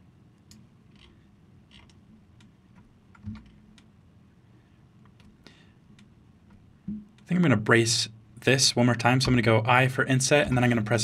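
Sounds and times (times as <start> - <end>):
computer keyboard and mouse clicks: 0.4 - 3.9.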